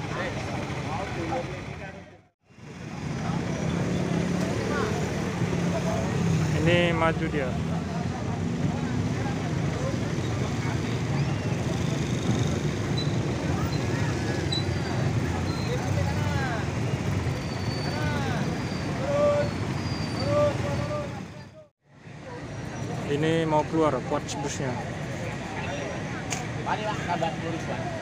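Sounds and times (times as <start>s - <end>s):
bus diesel engine rumbling: 0.0s - 28.0s.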